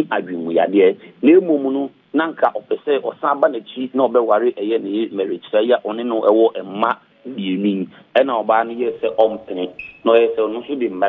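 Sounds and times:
person talking radio-like: 8.6s - 11.0s.

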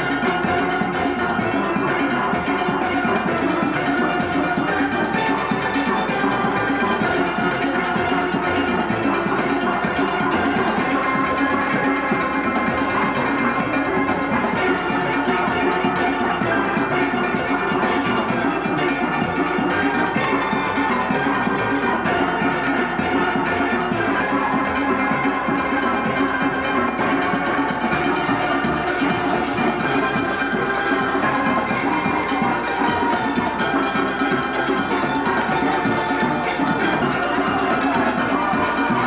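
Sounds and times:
steel band playing: 0.0s - 39.0s.

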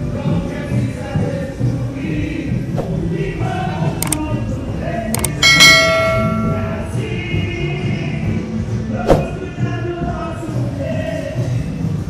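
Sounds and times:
carnival parade music with singing: 0.0s - 5.1s, 6.8s - 12.0s
loud metallic clang: 5.2s - 7.1s.

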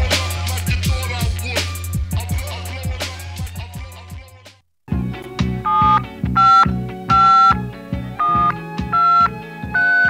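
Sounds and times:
hip-hop beat with deep bass: 0.0s - 4.6s
telephone keypad tones: 5.7s - 7.6s, 8.2s - 10.0s.

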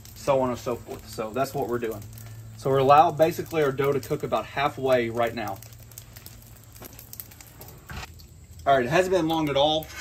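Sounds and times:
dough sizzling on griddle: 0.0s - 10.0s.

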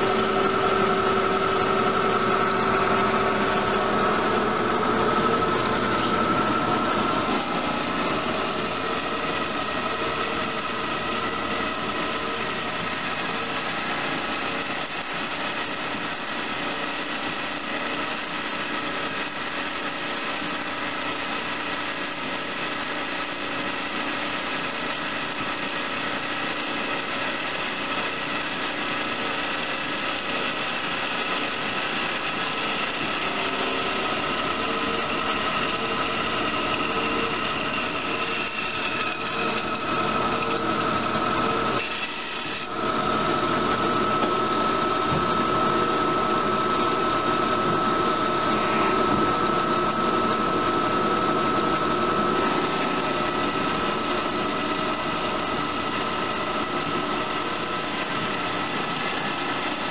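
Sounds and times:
band saw running: 0.0s - 59.9s
band saw whine: 0.0s - 59.9s.

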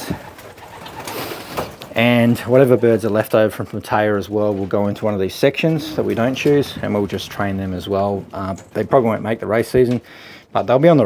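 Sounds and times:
pigeons cooing: 0.0s - 1.8s, 5.6s - 7.5s.

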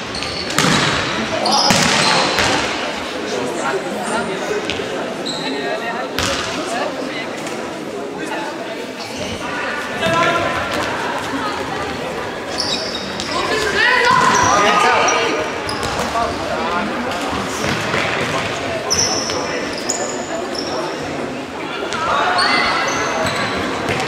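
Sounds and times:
shoes squeaking: 11.2s - 16.6s, 18.9s - 21.1s
players shouting: 13.2s - 15.6s.

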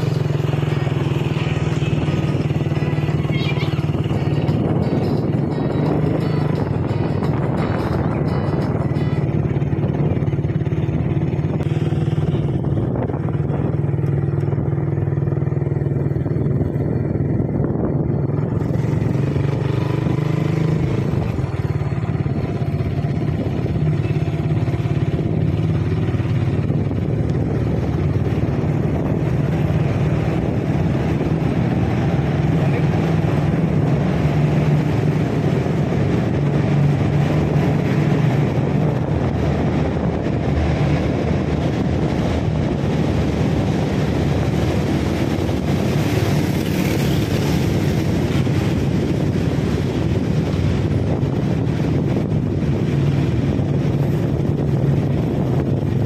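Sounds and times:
motorcycle engine droning: 0.0s - 56.0s
road noise: 0.0s - 56.0s.

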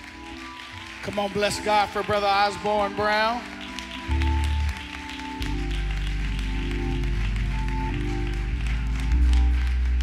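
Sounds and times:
people clapping: 0.0s - 10.0s.

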